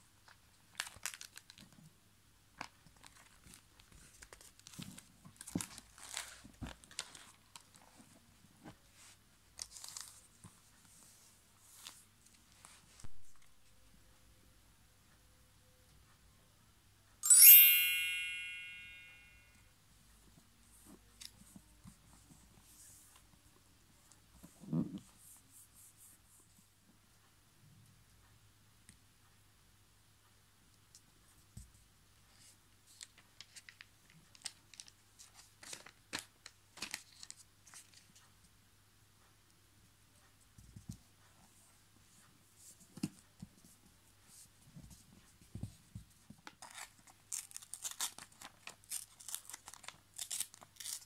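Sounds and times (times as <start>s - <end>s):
soft paper rustles: 0.2s - 1.9s, 2.5s - 13.6s, 30.9s - 38.5s, 40.4s - 51.0s.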